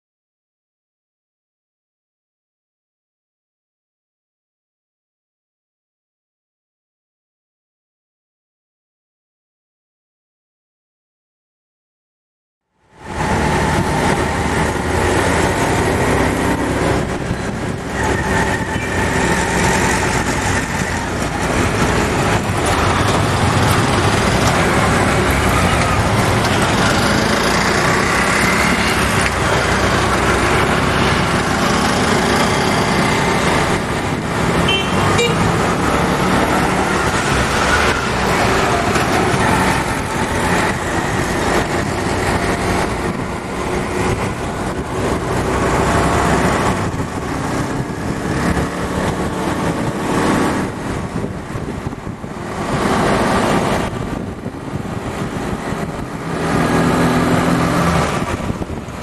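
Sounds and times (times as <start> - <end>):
vehicle engines and tyres: 12.7 - 59.0
car horns: 34.6 - 35.6.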